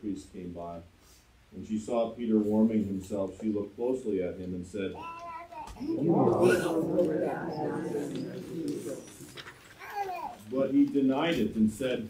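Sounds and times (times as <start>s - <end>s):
person speaking: 5.8s - 9.6s.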